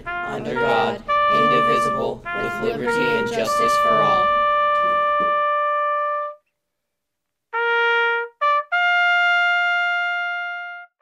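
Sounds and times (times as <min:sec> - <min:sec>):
trumpet long high note: 0:00.0 - 0:06.4, 0:07.6 - 0:11.0.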